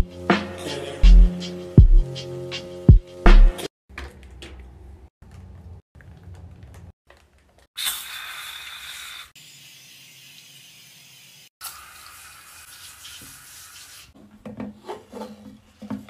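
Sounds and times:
spray bottle hissing: 0:07.8 - 0:12.0.

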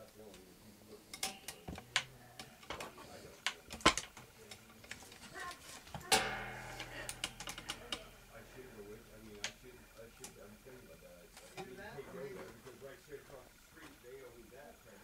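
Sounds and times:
low steady hum: 0:00.0 - 0:15.0
faint clicks and taps: 0:01.1 - 0:08.0
loud knock: 0:06.1 - 0:08.2.

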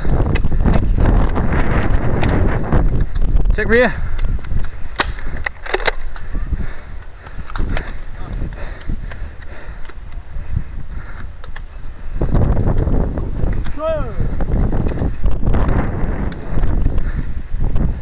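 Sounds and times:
wind rumble on microphone: 0:00.0 - 0:18.0.

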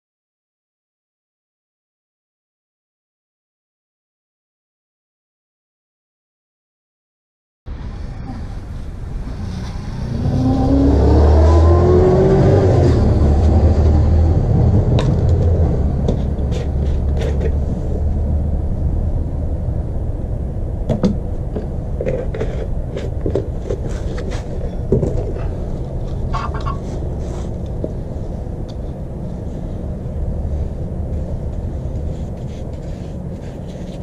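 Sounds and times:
low engine rumble: 0:07.7 - 0:34.0.

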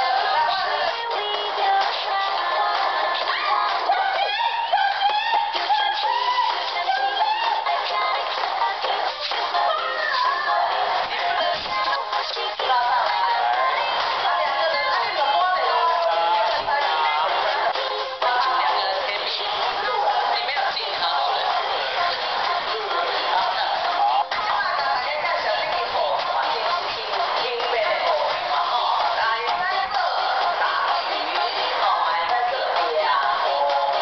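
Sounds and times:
song with high singing voice: 0:00.0 - 0:34.0.

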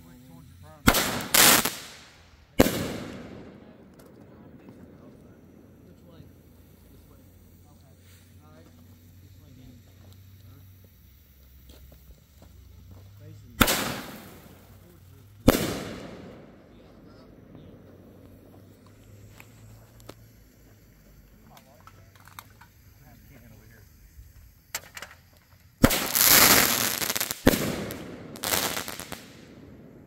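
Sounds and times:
firework shell burst: 0:00.0 - 0:30.0
loud firework bangs: 0:00.8 - 0:05.8, 0:13.5 - 0:19.3, 0:25.8 - 0:30.0.

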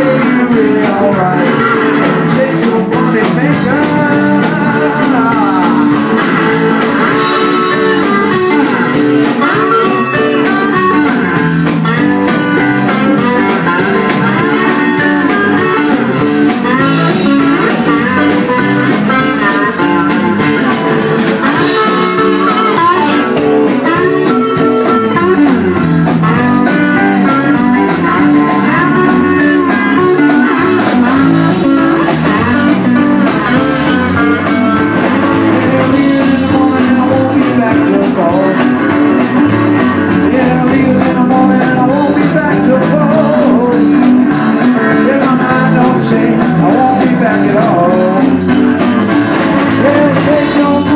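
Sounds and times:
blues electric guitars: 0:00.0 - 0:50.9
drum kit: 0:00.0 - 0:50.9.

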